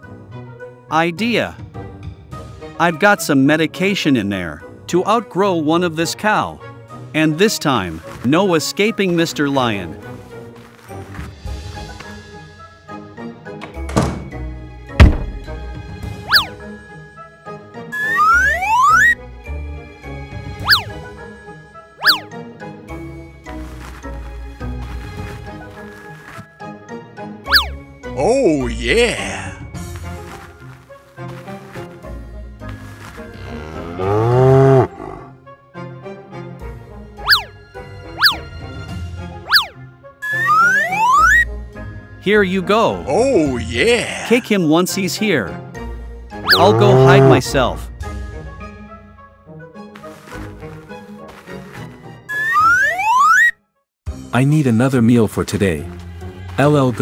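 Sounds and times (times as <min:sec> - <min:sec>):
background music: 0:00.0 - 0:53.5, 0:54.1 - 0:57.0
crate lid thuds: 0:15.0 - 0:15.5
boing sound effects: 0:18.0 - 0:19.2, 0:39.5 - 0:41.4, 0:46.5 - 0:47.1, 0:52.3 - 0:53.5
cartoon cow mooing: 0:33.3 - 0:35.4, 0:46.5 - 0:47.6.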